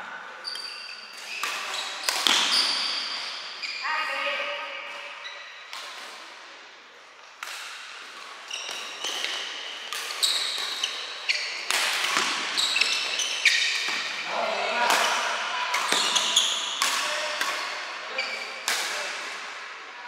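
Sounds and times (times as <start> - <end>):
shoes squeaking on court floor: 0.3 - 6.1, 8.0 - 18.6
racket striking shuttlecock: 1.4 - 2.9, 11.6 - 14.2, 18.6 - 19.3.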